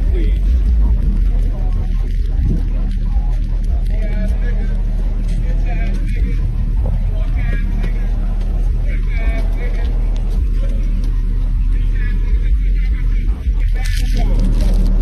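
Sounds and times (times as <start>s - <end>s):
low traffic rumble: 0.0s - 15.0s
voices calling out: 0.0s - 15.0s.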